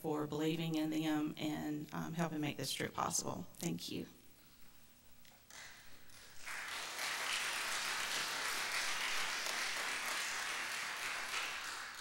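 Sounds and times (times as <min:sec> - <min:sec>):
congregation applauding: 0:05.5 - 0:12.0.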